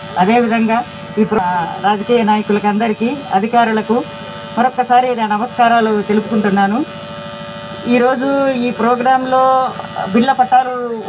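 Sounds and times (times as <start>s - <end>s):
electrical buzz with hum: 0.0s - 11.0s
person speaking: 0.2s - 6.9s, 7.8s - 11.0s.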